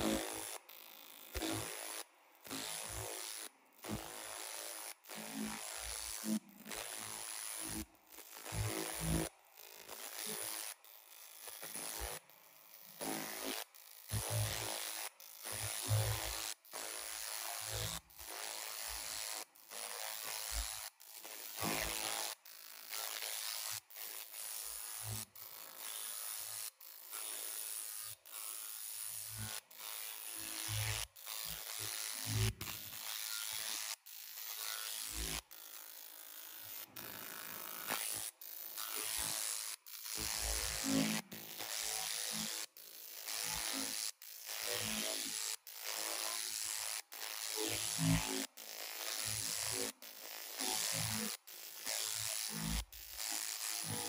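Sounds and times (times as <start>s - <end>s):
laser cleaning hiss: 0.0s - 0.6s, 1.3s - 10.8s, 13.0s - 54.0s.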